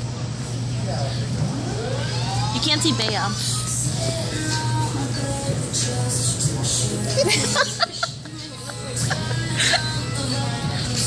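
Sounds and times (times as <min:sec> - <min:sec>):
restaurant room hum: 0:00.0 - 0:11.0.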